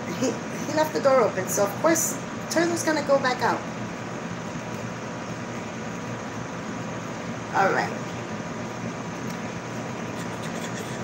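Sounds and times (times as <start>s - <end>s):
room noise hiss: 0.0s - 11.0s
faint low hum: 9.1s - 11.0s.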